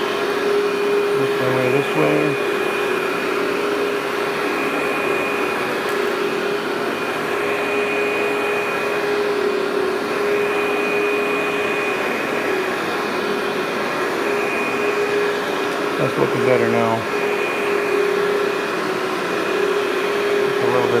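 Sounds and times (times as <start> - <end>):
upright vacuum cleaner running: 0.0 - 21.0.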